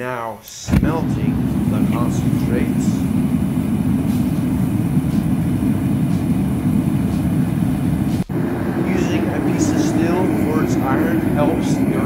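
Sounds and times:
propane burner rumbling: 0.6 - 12.0.

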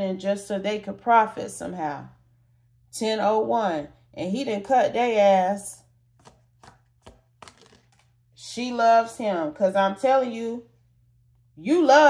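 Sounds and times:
cards tapping and flicking: 6.2 - 8.2.

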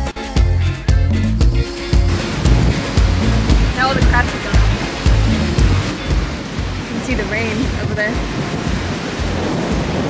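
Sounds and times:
surf breaking on rocks: 1.9 - 10.0
wind buffeting microphone: 2.1 - 10.0.

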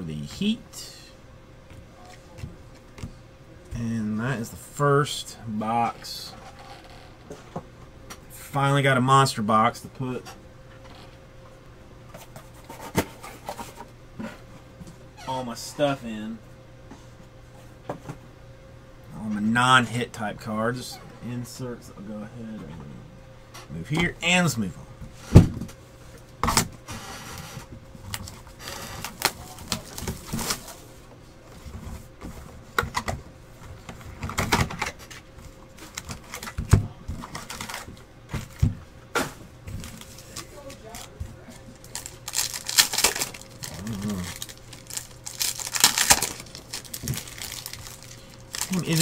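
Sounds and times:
faint electrical hum: 0.0 - 49.0
packaging crinkling and tearing: 28.1 - 30.8, 37.2 - 37.9, 39.8 - 49.0.

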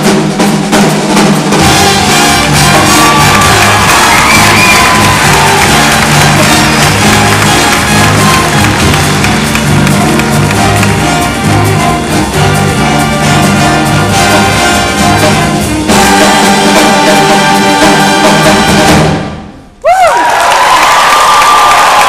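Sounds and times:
jazz big band playing: 0.0 - 19.7
audience cheering and whooping: 2.0 - 10.9, 19.8 - 22.0.

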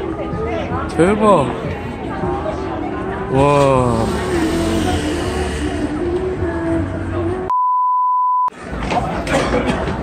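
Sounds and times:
busy street noise: 0.0 - 7.5, 8.5 - 10.0
crowd noise: 0.0 - 7.5, 8.5 - 10.0
shop music: 0.0 - 7.6
pure beep tone: 7.5 - 8.5.

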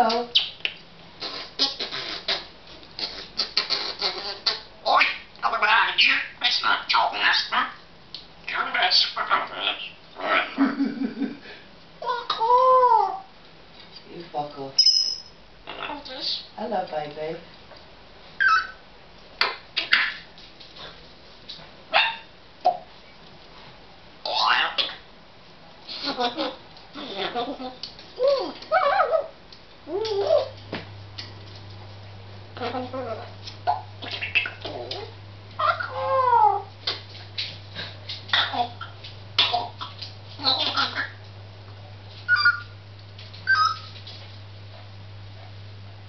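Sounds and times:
parrot imitating dog bark: 4.0 - 7.8, 8.5 - 10.5, 18.4 - 18.8, 19.4 - 20.3, 21.9 - 22.9, 24.2 - 25.0, 28.2 - 29.4, 32.6 - 36.7, 38.3 - 41.2, 42.3 - 42.7.

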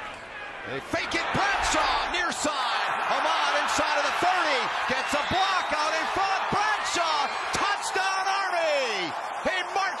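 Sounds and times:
stadium crowd noise: 0.0 - 10.0
excited sports commentator: 0.7 - 10.0.

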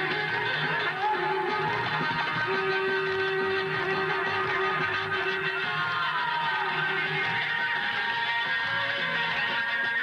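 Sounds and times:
folk dance music: 0.0 - 10.0.

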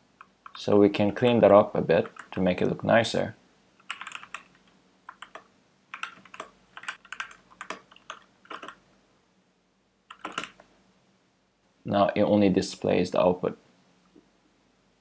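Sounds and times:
computer keyboard typing: 0.2 - 0.6, 2.0 - 2.4, 3.8 - 8.8, 10.1 - 10.6.

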